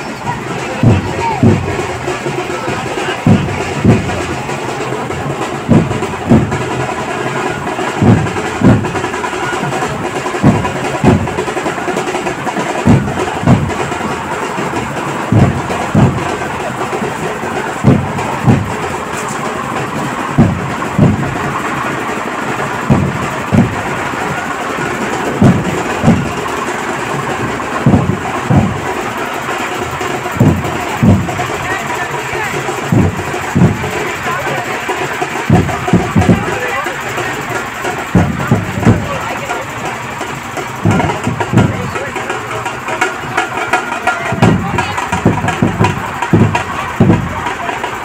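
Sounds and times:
crowd noise: 0.0s - 48.0s
engine running: 0.0s - 48.0s
heavy booming dhol drums: 0.0s - 48.0s
steady loud din: 0.0s - 48.0s.

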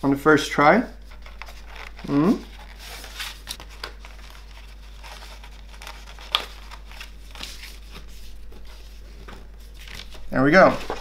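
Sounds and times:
paper rustling: 1.0s - 11.0s.

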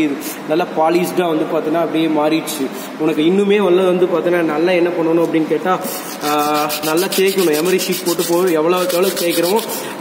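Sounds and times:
abrasive paper rubbing on steel: 5.9s - 10.0s.

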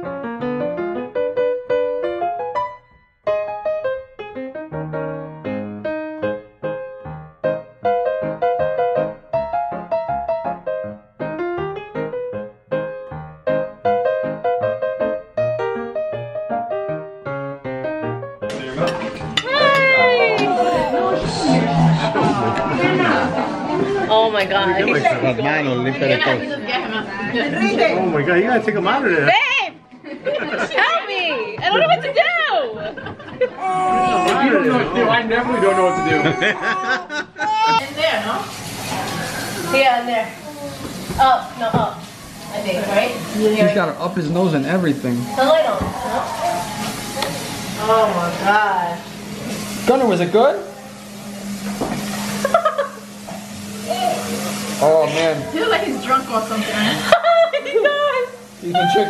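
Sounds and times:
faucet running into sink: 37.8s - 59.0s.

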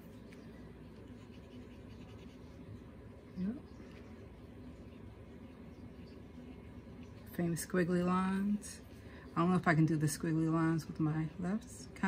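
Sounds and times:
fountain pen scratching on paper: 0.2s - 2.7s.

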